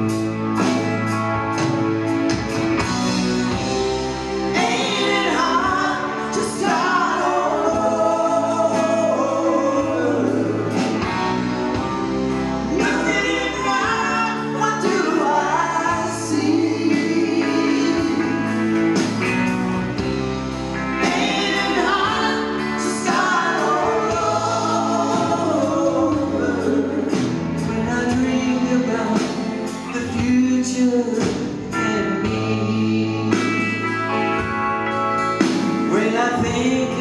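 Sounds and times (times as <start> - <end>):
drums: 0.0 - 37.0
electric bass: 0.0 - 37.0
man singing: 4.5 - 10.8, 12.7 - 18.8, 21.0 - 33.9, 35.8 - 37.0.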